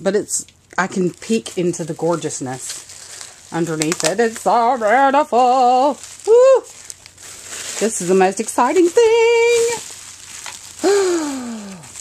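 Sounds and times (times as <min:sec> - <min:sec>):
woman saying ooh: 0:06.3 - 0:06.7.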